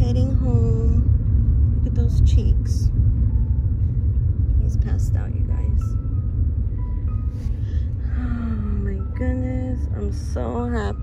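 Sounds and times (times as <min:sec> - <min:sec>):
car road rumble inside cabin: 0:00.0 - 0:11.0
faint background music: 0:00.0 - 0:11.0.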